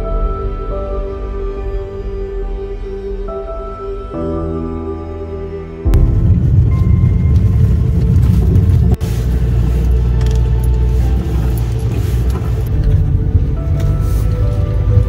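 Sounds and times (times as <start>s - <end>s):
faint music: 0.0s - 15.0s
vehicle rumbling over dirt track: 5.9s - 15.0s.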